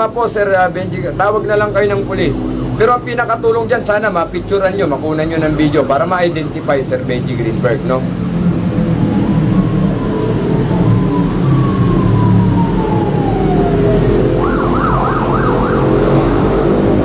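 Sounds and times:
emergency vehicle siren: 0:00.0 - 0:17.0
low drone: 0:04.8 - 0:17.0.

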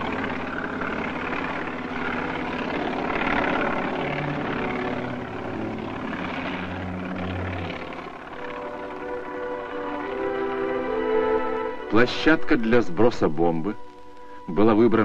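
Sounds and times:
helicopter engine and rotor chop: 0:00.0 - 0:15.0.

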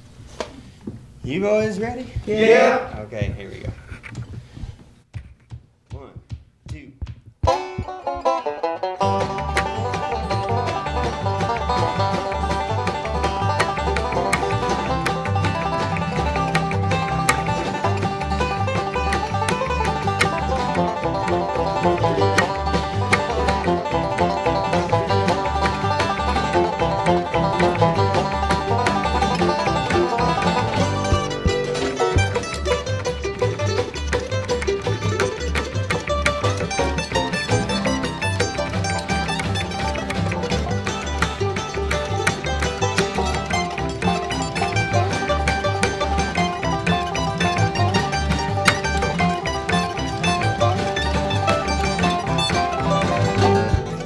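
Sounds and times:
upright bass: 0:01.2 - 0:04.6, 0:05.9 - 0:54.0
faint taps: 0:02.9 - 0:08.4, 0:27.6 - 0:54.0
djembe hand drum beat: 0:07.0 - 0:54.0
acoustic guitar: 0:07.4 - 0:54.0
banjo: 0:07.4 - 0:54.0
mandolin: 0:07.4 - 0:54.0.

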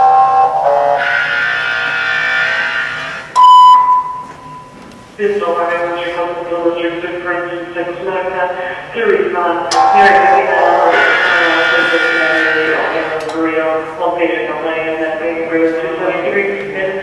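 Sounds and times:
announcement over loudspeaker: 0:00.0 - 0:04.6, 0:05.2 - 0:17.0.

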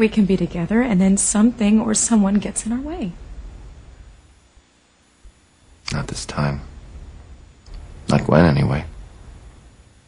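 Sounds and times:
faint low hum: 0:00.0 - 0:10.0
man talking: 0:05.9 - 0:06.7, 0:08.0 - 0:08.9.

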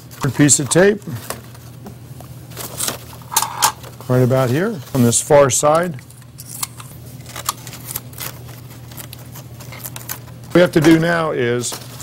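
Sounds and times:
paper crackle: 0:02.5 - 0:05.2, 0:07.0 - 0:12.0
tape and paper crinkling: 0:02.5 - 0:05.2, 0:05.8 - 0:12.0.

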